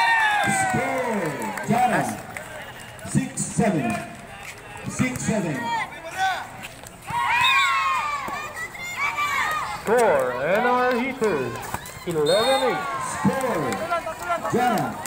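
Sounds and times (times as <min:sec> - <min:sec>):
people shouting: 0:07.1 - 0:15.0.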